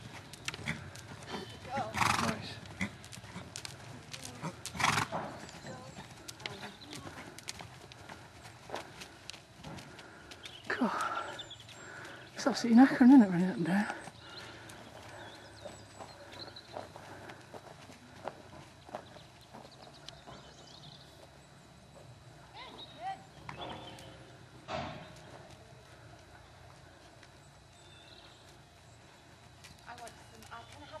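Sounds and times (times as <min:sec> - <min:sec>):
horse hoofbeats: 0:00.0 - 0:31.0
faint voices: 0:01.2 - 0:09.2.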